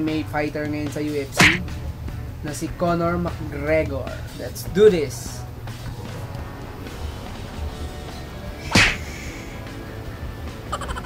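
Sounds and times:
background music with low beat: 0.0s - 11.0s
sharp whip-like whoosh: 1.4s - 1.7s, 8.6s - 9.2s.

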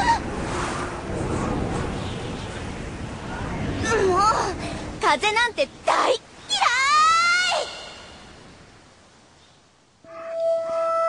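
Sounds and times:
soft hiss: 0.2s - 10.0s.

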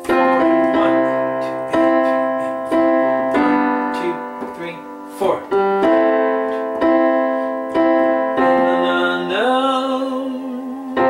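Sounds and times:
man singing held note: 0.0s - 3.0s
digital piano chords: 0.0s - 11.0s.

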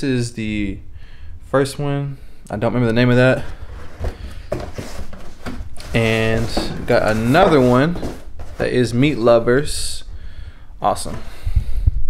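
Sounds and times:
cardboard box rustling: 3.4s - 9.2s.

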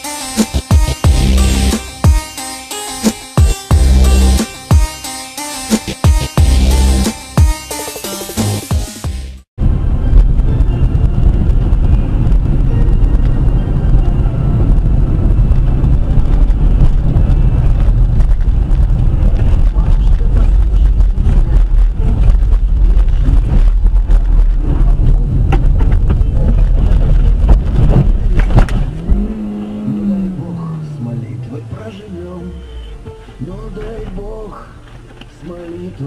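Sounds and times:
car engine and tyre rumble: 9.6s - 36.0s.

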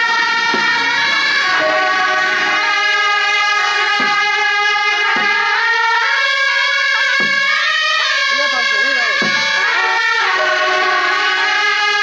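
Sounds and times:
loud reed horns sustained notes: 0.0s - 12.0s.

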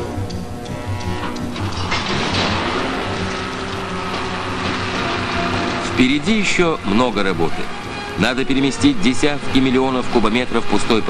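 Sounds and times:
excavator mechanical clatter: 0.0s - 11.0s
machine hum: 0.0s - 11.0s.

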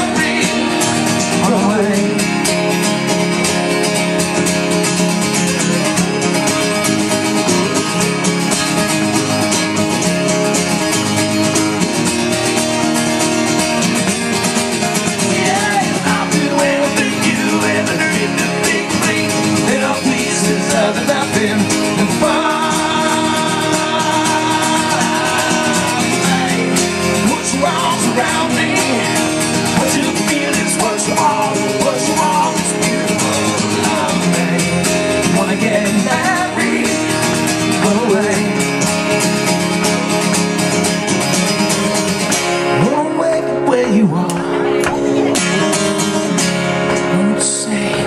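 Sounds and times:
person singing: 0.0s - 2.6s, 15.1s - 40.2s, 42.8s - 48.0s
acoustic guitars strumming: 0.0s - 48.0s.

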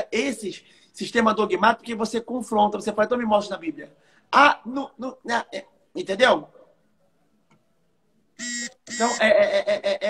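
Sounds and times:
man's vocal hesitation sound: 8.9s - 10.0s.

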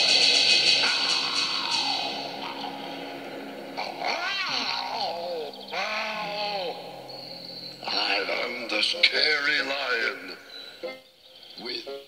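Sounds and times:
soft background music: 0.0s - 12.0s
person imitating lion roars: 0.8s - 3.0s, 3.8s - 7.0s.

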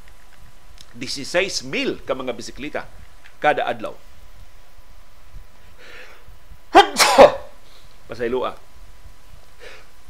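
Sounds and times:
man coughing into hands: 6.7s - 7.6s.

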